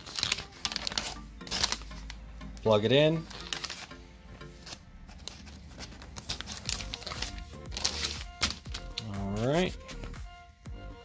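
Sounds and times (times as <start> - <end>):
paper pages rustling and turning: 0.0 - 10.2
background music: 0.0 - 11.0.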